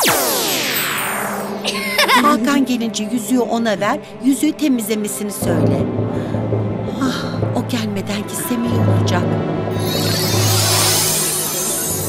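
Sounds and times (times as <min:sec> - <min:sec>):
magic spell sound effect: 0:09.8 - 0:12.0.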